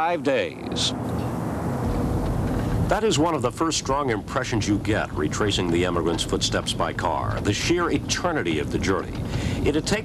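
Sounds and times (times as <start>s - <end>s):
car interior road rumble: 0.5s - 10.0s.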